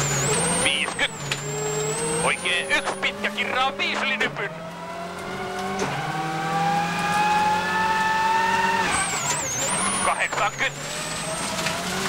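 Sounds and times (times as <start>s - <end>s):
rally car engine at full throttle: 0.0s - 12.0s.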